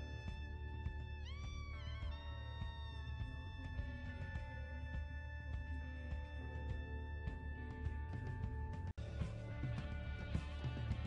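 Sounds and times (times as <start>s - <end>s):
steady low drone: 0.0s - 11.0s.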